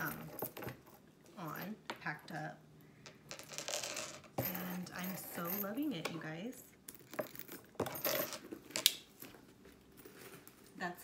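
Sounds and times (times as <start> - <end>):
metal chain jingling: 3.6 - 6.0, 7.0 - 8.5.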